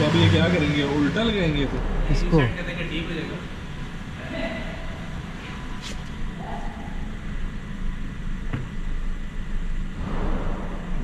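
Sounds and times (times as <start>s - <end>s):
motor vehicle engine rumble: 0.0s - 11.0s.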